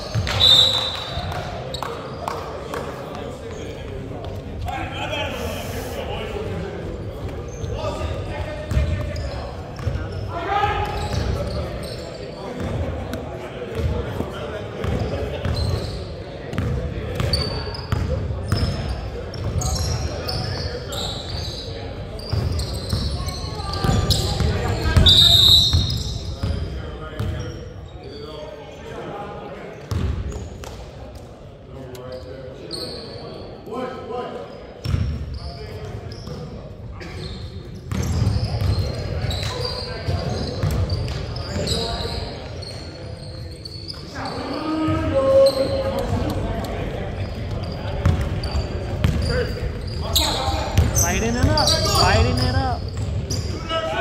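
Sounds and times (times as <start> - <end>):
players calling out: 44.0 - 54.0.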